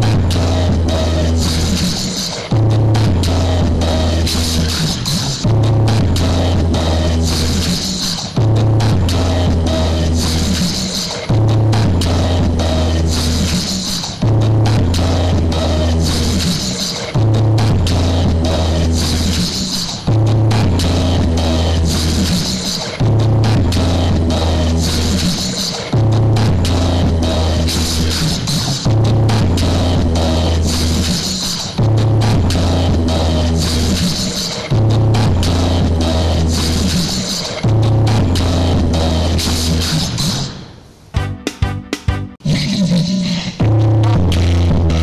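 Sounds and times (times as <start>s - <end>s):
electronic dance music: 41.2s - 45.0s.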